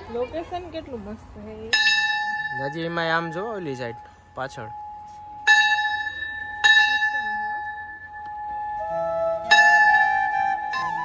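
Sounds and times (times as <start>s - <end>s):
brass bell ringing: 1.8s - 11.0s.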